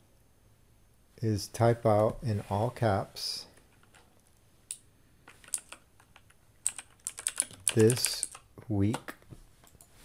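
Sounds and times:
computer keyboard keys clicking: 5.3 - 9.9.

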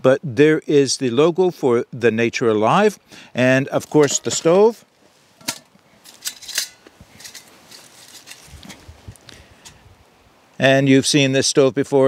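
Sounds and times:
rustling: 3.7 - 10.0
metal pot clicks and clinks: 5.4 - 8.5.

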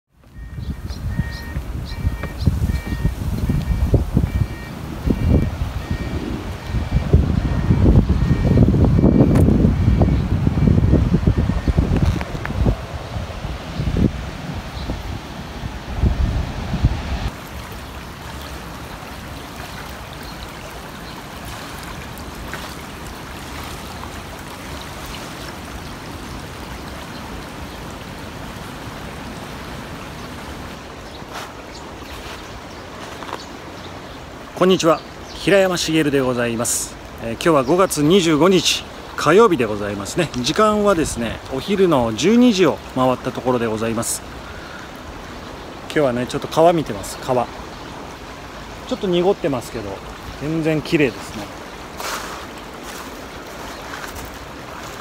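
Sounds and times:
wind buffeting microphone: 0.2 - 19.4
faint high two-note tone: 0.3 - 10.8
fast-flowing river rushing: 1.1 - 55.0.

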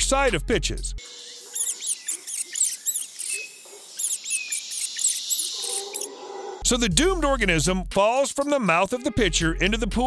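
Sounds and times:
high-pitched bird chirps: 1.0 - 6.2.

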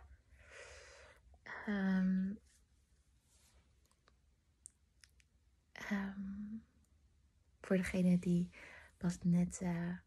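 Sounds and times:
faint small clicks: 3.8 - 5.4.

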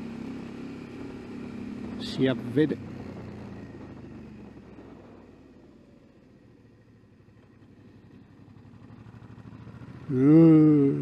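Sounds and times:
motorcycle engine at low revs: 0.0 - 11.0.

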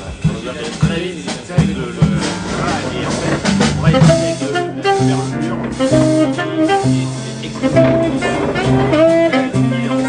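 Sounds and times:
drum kit strokes: 0.0 - 10.0
sustained low bass notes: 0.0 - 10.0
cymbals: 0.2 - 10.0.

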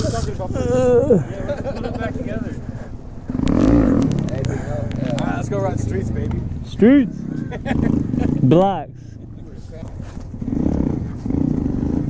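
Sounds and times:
faint voices: 0.0 - 8.3
distant motorcycle engine rumble: 0.0 - 12.0.

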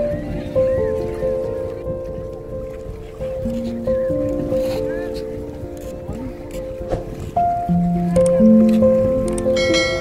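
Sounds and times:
background music held notes: 0.0 - 10.0.

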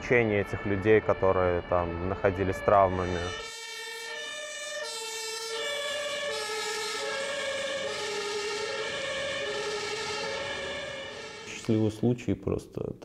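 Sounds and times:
two-tone emergency siren: 0.0 - 11.9.

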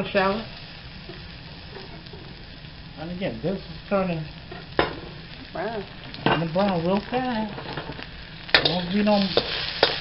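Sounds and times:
garlic sizzling in hot oil: 0.0 - 10.0.

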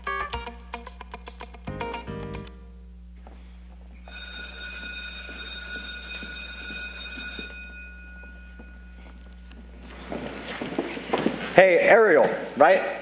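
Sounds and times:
electric school bell ringing: 4.0 - 10.1.

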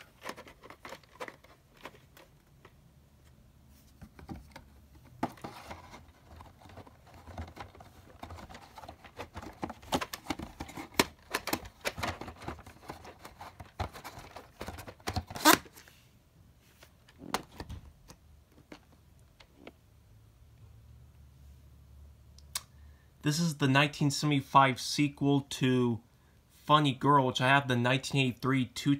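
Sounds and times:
plastic cassette handling: 0.0 - 2.8, 4.0 - 15.9.

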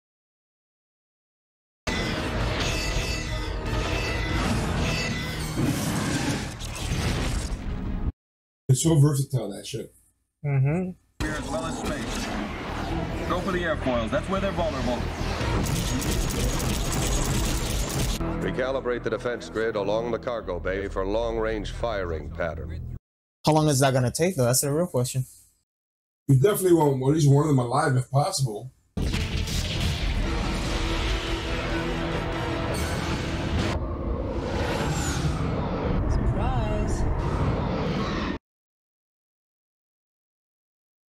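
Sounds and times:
rapid rattling weapons fire: 15.4 - 18.2
soundtrack music: 29.0 - 33.9
warbling effect: 32.8 - 38.4
low rumble: 33.0 - 38.4
sweeping whoosh: 33.6 - 38.4.

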